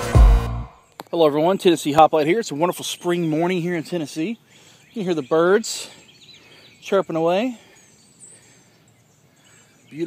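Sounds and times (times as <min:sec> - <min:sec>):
songbirds chirping: 0:00.6 - 0:10.0
outdoor background hiss: 0:00.7 - 0:10.0.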